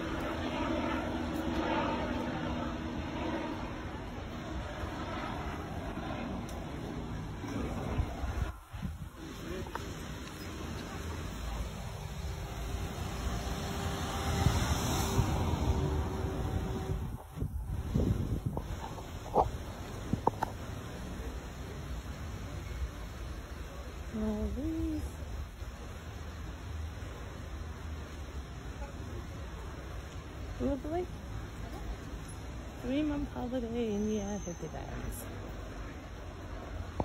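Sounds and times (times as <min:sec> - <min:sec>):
vehicle passing: 0:00.0 - 0:18.4
wind buffeting microphone: 0:00.0 - 0:20.7
street noise: 0:00.0 - 0:37.0.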